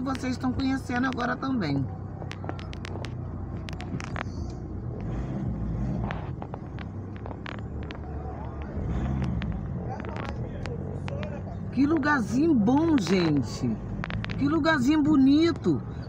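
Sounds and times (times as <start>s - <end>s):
car engine: 0.0s - 16.0s
road rumble: 0.0s - 16.0s
light clicks and knocks: 6.0s - 14.6s.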